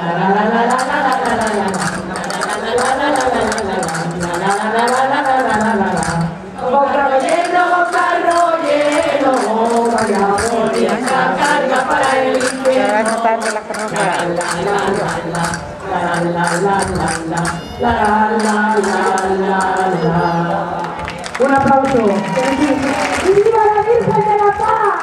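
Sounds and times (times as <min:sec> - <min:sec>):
person singing folk tune: 0:00.0 - 0:21.0
sharp percussion clicks: 0:00.6 - 0:24.8.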